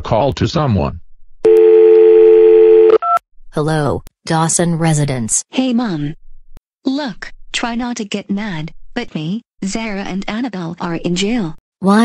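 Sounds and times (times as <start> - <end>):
telephone dial tone: 1.4 - 3.2.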